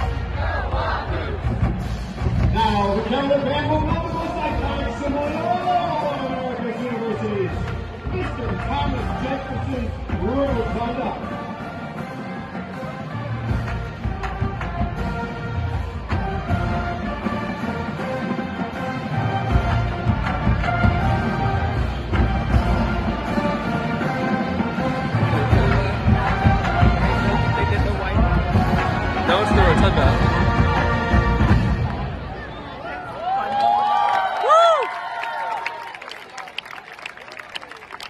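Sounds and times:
marching band brass and drums: 0.0s - 32.9s
crowd whooping and cheering: 32.3s - 38.0s
people clapping: 33.3s - 38.0s.

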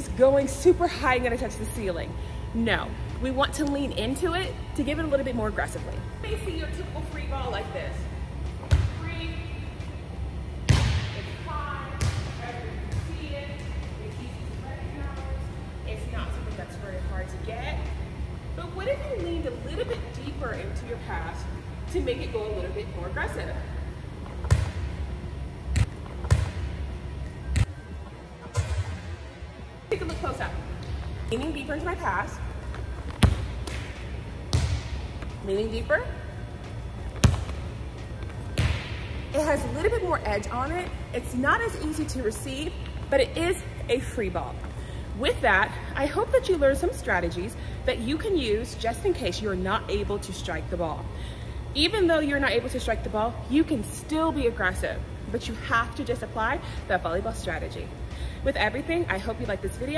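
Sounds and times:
ball bouncing on hardwood floor: 37.2s - 37.6s.

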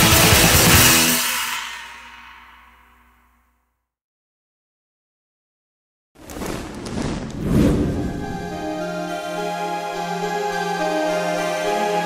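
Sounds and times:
black metal band with fast drums: 0.0s - 1.9s.

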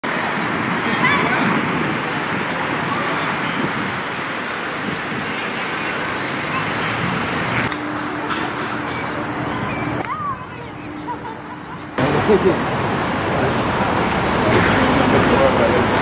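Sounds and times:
indistinct voices: 0.0s - 16.0s
traffic noise: 0.0s - 16.0s.

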